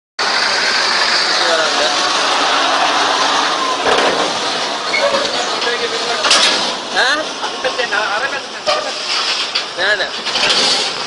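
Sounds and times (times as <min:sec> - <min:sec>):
heavy lorry engine running: 0:00.2 - 0:11.0
voices: 0:01.2 - 0:11.0.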